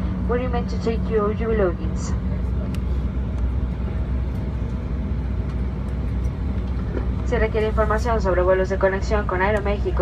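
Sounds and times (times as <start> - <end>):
jet engines idling: 0.0 - 10.0.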